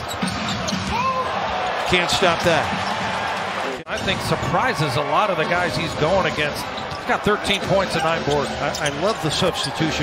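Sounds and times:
arena crowd noise: 0.0 - 10.0
shoe squeak: 8.1 - 9.8.

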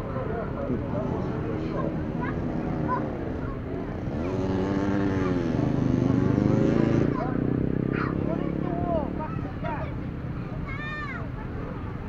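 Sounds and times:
engine revving: 1.9 - 9.7
children calling out: 7.0 - 8.4, 10.5 - 11.9.

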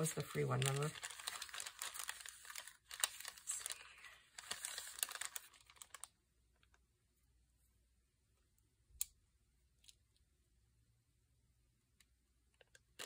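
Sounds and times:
paper rustling and crinkling: 0.0 - 6.1.

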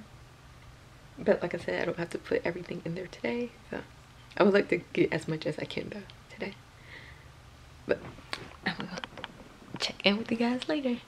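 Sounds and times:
woman speaking: 1.2 - 6.6, 7.9 - 9.1, 9.7 - 11.0.

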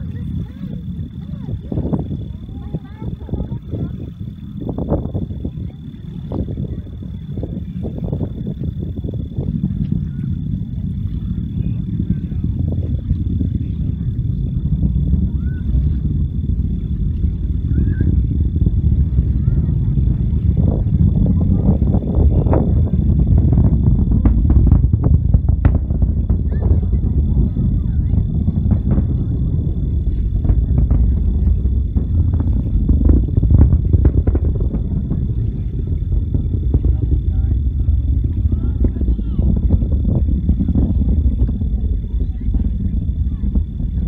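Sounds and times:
distant rocket engine rumble: 0.0 - 44.0.

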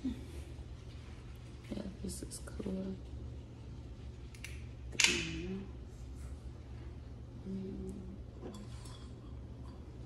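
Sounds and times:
steady low hum: 0.0 - 10.0
woman speaking softly: 1.6 - 3.1, 7.4 - 8.2.

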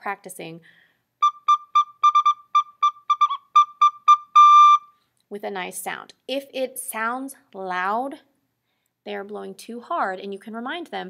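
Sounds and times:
recorder playing short notes: 1.2 - 4.9.

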